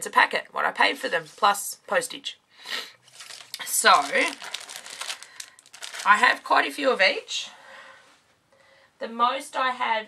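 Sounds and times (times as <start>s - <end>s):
plastic packets crinkling: 3.0s - 6.7s.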